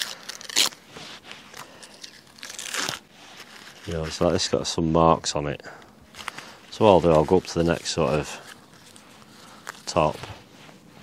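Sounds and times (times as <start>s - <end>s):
onion skins crackling being peeled: 0.0s - 4.6s, 5.8s - 10.4s.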